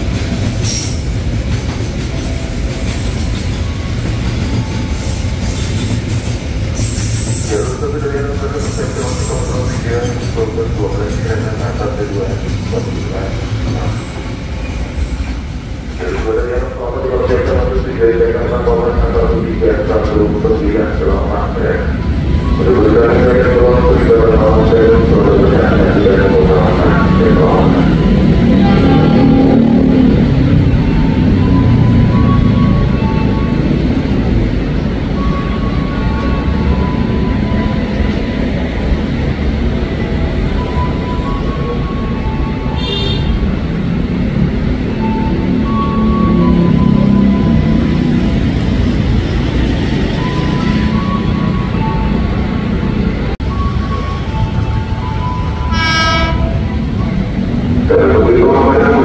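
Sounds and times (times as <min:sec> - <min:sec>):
train wagons rumbling on rails: 0:00.0 - 0:59.0
train horn: 0:28.4 - 0:30.1, 0:42.8 - 0:43.5, 0:55.6 - 0:56.7.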